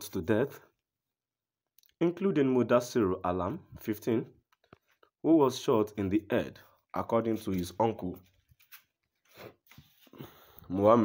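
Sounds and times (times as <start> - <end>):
narrator speaking: 5.2 - 8.3.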